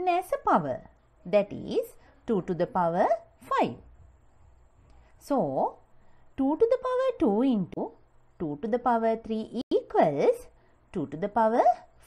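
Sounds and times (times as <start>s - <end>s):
woman speaking: 0.0s - 3.9s, 5.2s - 12.0s.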